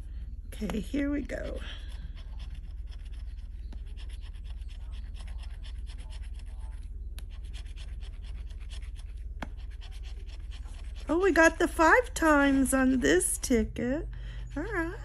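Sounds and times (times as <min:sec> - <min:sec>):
scratching lottery ticket: 0:00.6 - 0:13.5.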